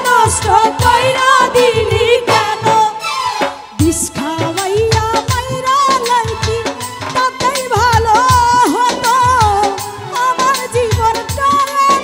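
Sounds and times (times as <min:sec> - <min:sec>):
drum beating steadily: 0:00.0 - 0:12.0
woman singing into a microphone: 0:00.0 - 0:12.0.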